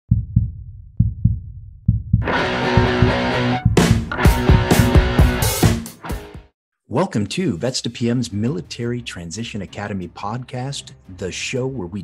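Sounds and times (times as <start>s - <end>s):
deep heartbeat-like thumps: 0.1s - 5.3s.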